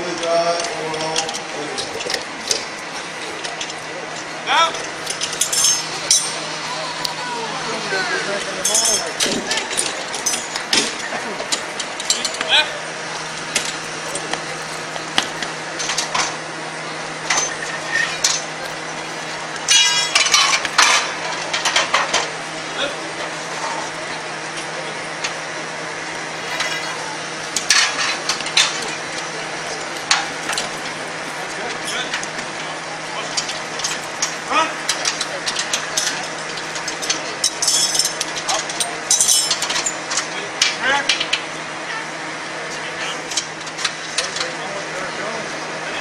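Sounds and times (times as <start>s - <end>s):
steady low hum: 0.0s - 46.0s
metal tools clinking and knocking: 3.3s - 6.4s, 8.6s - 12.6s, 13.2s - 16.4s, 17.2s - 22.3s, 23.5s - 25.4s, 26.4s - 32.4s, 33.2s - 40.3s.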